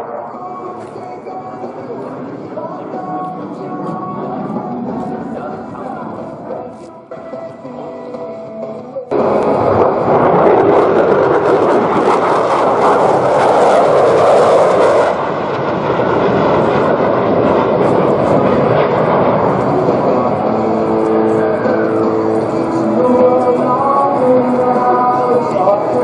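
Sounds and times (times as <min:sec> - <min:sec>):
fighter jet engine flying past: 0:00.0 - 0:07.9, 0:09.1 - 0:26.0.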